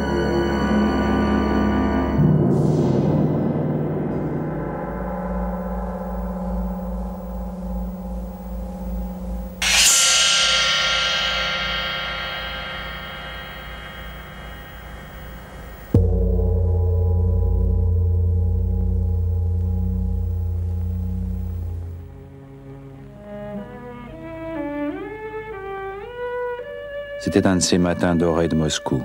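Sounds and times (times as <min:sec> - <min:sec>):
gong strikes ringing: 0:00.0 - 0:22.1.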